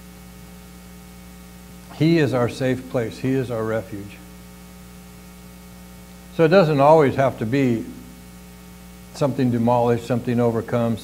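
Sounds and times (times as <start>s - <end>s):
electrical mains hum: 0.0s - 11.0s
faint hiss: 0.0s - 11.0s.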